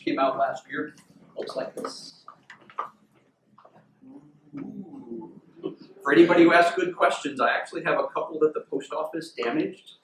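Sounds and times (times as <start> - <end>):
faint murmuring voice: 4.0 - 6.3.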